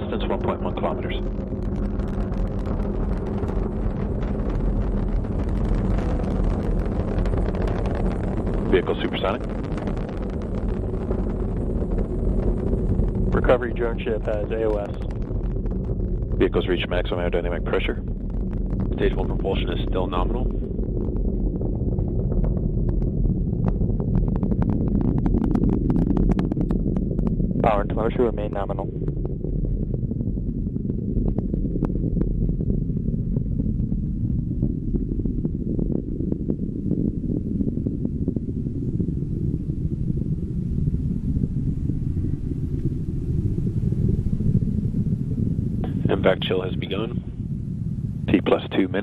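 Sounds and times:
rocket engines rumbling and crackling: 0.0s - 49.0s.

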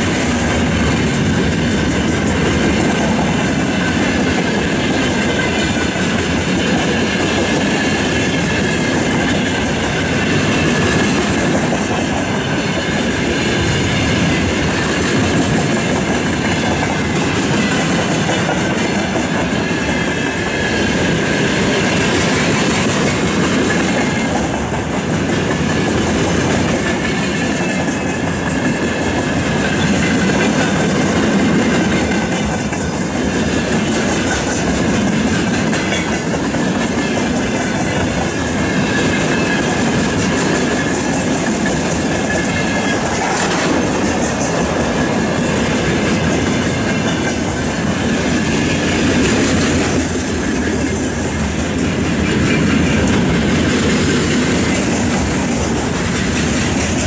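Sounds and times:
freight train wheels clattering: 0.0s - 57.0s.

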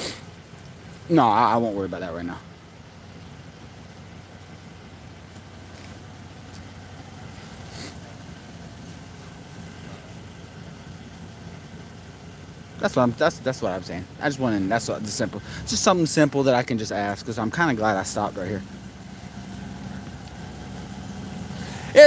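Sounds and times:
vehicle engine idling: 0.0s - 22.0s.

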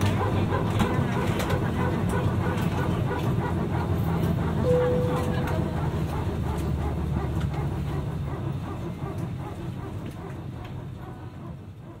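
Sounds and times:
airplane cabin rumble: 0.0s - 12.0s.

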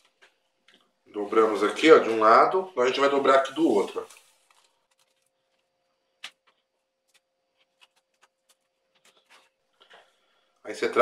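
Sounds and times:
faint steady hum: 0.0s - 11.0s
hands handling paper kite: 3.5s - 9.6s.

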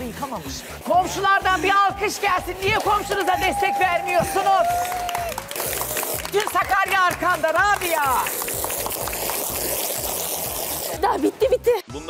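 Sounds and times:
background music with low beat: 0.0s - 12.0s
water hissing from hose spray gun: 7.9s - 11.2s.

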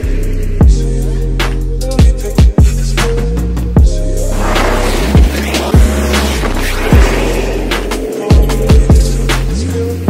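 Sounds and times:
deep bass note: 3.8s - 9.2s
hissing swell: 4.2s - 8.8s
heavy kick drum hits: 5.2s - 9.1s.

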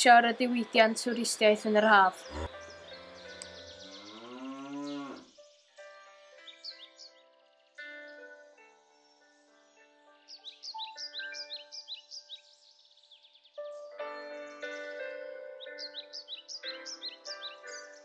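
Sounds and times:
birds chirping: 0.0s - 15.0s, 15.6s - 18.0s
soft music with held notes: 0.0s - 18.0s
cow mooing: 2.2s - 2.7s, 3.9s - 5.3s.

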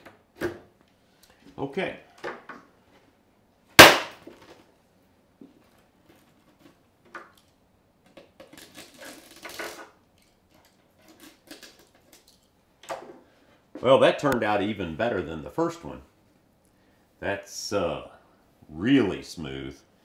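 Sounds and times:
plastic crackling and scraping: 5.7s - 12.5s.

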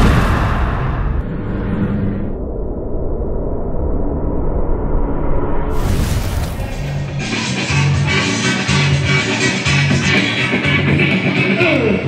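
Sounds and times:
low cinematic rumble: 0.0s - 8.2s.

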